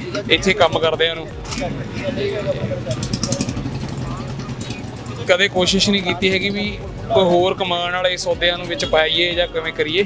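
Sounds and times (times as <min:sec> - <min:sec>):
traffic engine hum: 0:00.0 - 0:10.0.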